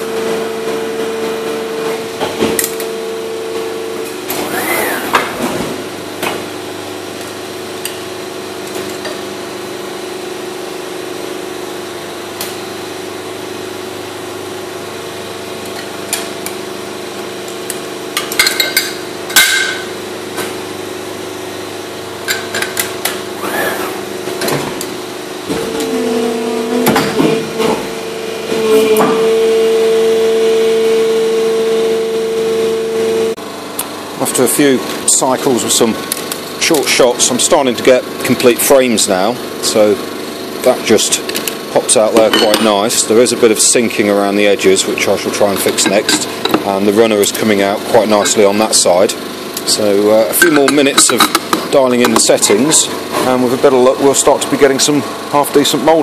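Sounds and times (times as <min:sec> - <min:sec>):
machine mechanical hum: 0:00.0 - 0:56.0.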